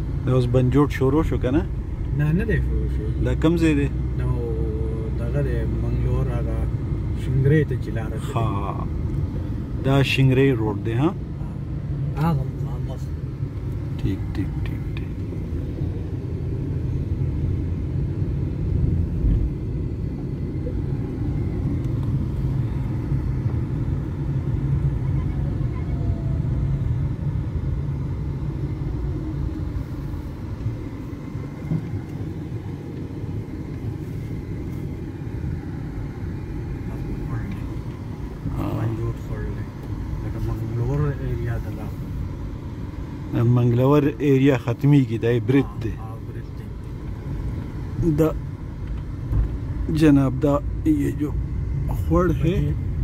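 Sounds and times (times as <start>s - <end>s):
car engine and tyres rumbling: 0.0s - 53.0s.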